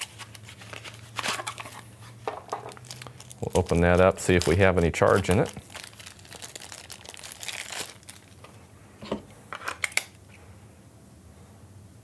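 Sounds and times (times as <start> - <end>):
plastic bag crinkling: 0.0 - 8.5.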